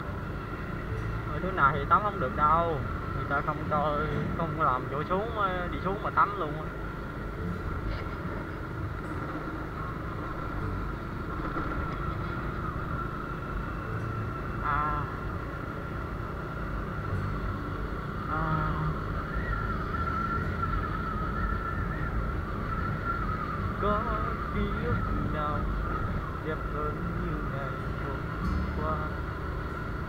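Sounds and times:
high whine: 0:00.0 - 0:30.0
motorbike engine: 0:00.0 - 0:30.0
road noise: 0:00.0 - 0:30.0
wind rumble: 0:00.0 - 0:30.0.

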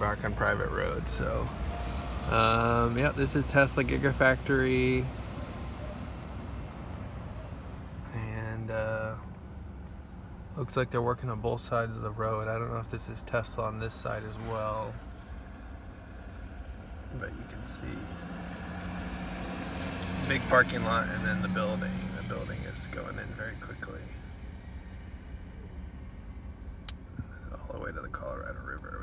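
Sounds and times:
car rumble from inside cabin: 0:00.0 - 0:29.0.

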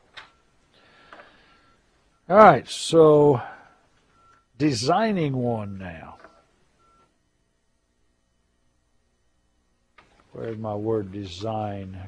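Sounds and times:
faint electronic beep: 0:00.0 - 0:07.3
person speaking: 0:04.6 - 0:06.2, 0:10.4 - 0:12.0.

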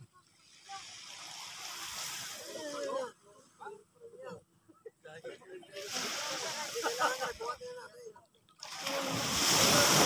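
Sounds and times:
men talking and calling out: 0:02.3 - 0:10.0.

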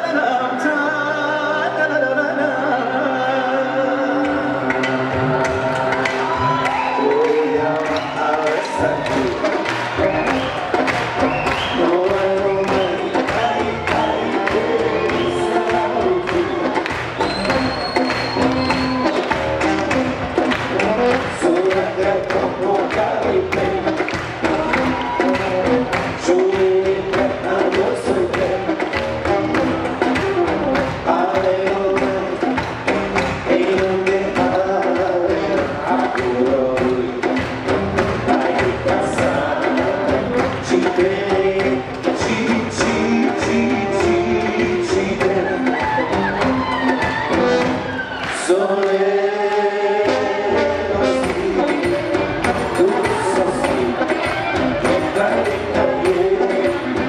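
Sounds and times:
brass instruments playing melody: 0:01.1 - 0:57.0
steady drum beat: 0:04.8 - 0:48.6, 0:50.0 - 0:57.0.

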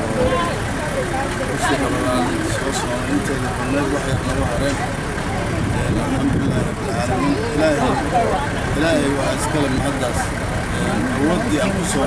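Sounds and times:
man speaking into microphone: 0:01.5 - 0:04.9, 0:05.7 - 0:12.0.

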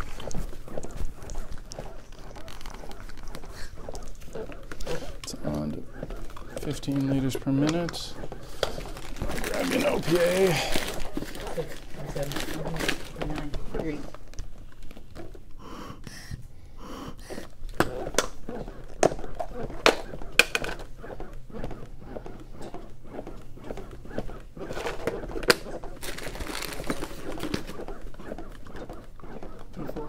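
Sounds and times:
training manikin clicks and knocks: 0:00.0 - 0:09.7, 0:17.7 - 0:30.0
person breathing hard: 0:15.5 - 0:17.7.

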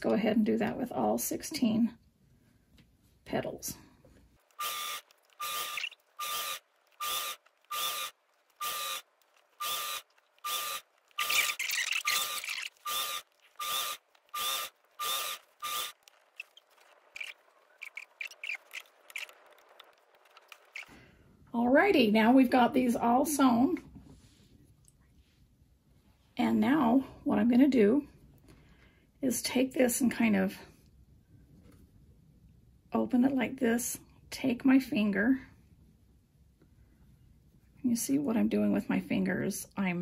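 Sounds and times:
sewing machine running: 0:04.4 - 0:17.7.

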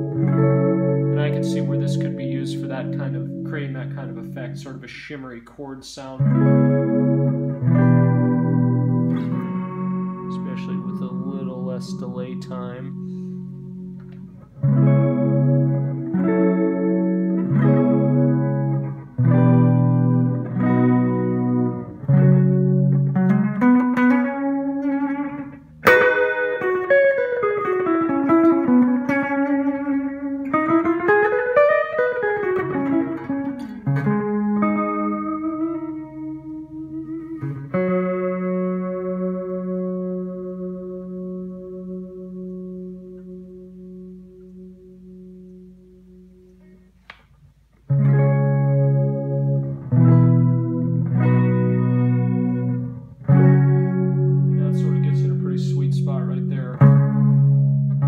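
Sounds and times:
electric guitar with delay: 0:00.0 - 0:05.4, 0:06.0 - 0:47.0, 0:47.9 - 0:58.0.

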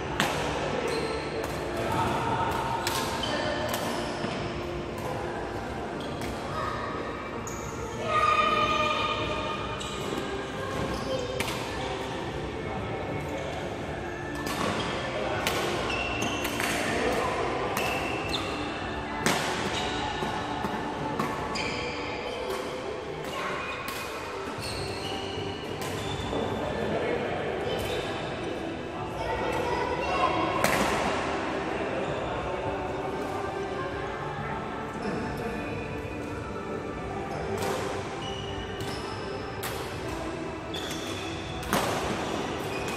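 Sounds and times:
badminton rackets hitting shuttlecocks: 0:00.2 - 0:04.3, 0:40.8 - 0:42.9.

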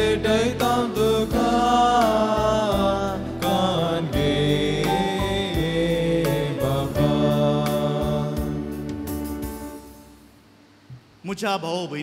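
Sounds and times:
choir singing a hymn: 0:00.0 - 0:09.2
instrumental accompaniment: 0:00.0 - 0:10.4.

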